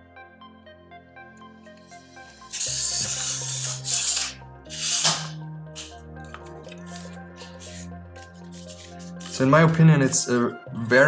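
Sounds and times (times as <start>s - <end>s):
background music: 0.0s - 11.0s
tripod legs sliding shut: 2.5s - 9.4s.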